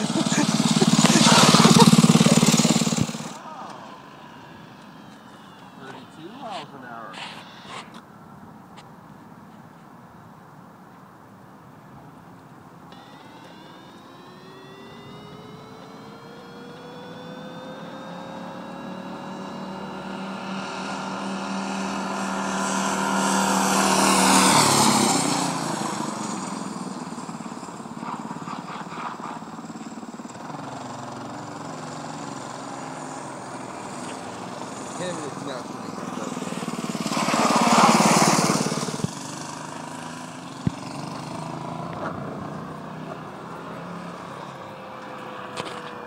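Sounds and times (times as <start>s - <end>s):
minibike engine passing by: 0.0s - 7.9s, 12.9s - 46.0s.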